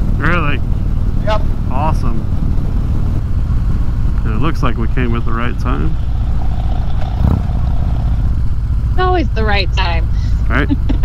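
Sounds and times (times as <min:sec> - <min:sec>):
motorcycle engine rumbling: 0:00.0 - 0:11.0.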